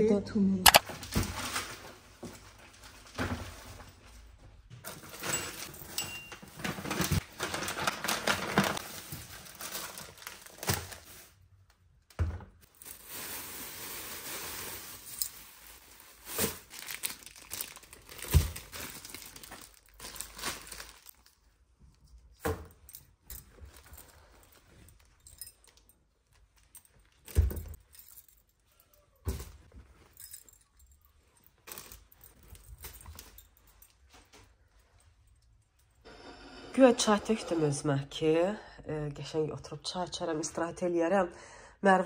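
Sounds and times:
plastic bags crinkling: 0:04.9 - 0:11.6, 0:12.6 - 0:21.7, 0:23.4 - 0:34.8.

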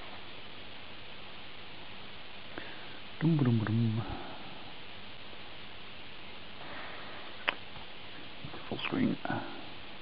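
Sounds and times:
room and microphone hiss: 0:00.0 - 0:10.0.

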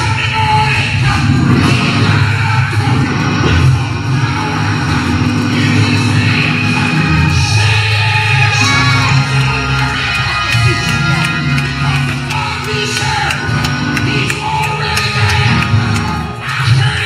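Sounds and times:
loud church music: 0:00.0 - 0:17.0
preacher singing and shouting: 0:00.0 - 0:17.0.

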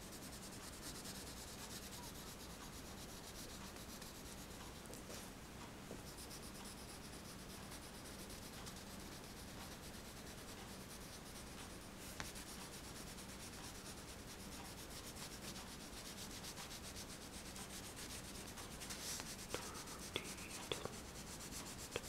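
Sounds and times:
crayon scratching on paper: 0:00.0 - 0:04.9, 0:06.0 - 0:22.0.

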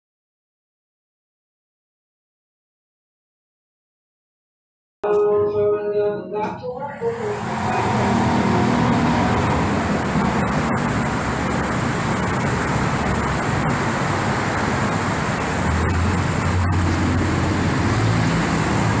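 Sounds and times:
low engine drone: 0:05.0 - 0:19.0
city street traffic: 0:05.1 - 0:19.0.

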